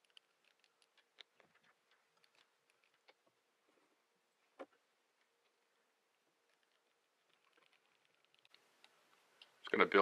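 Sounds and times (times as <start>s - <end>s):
faint small clicks: 6.5s - 9.8s.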